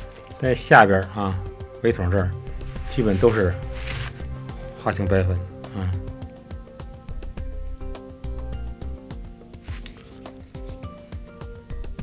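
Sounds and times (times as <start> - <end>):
music with held notes: 0.0 - 12.0
soft rubbing sounds: 2.4 - 4.8, 9.6 - 10.9.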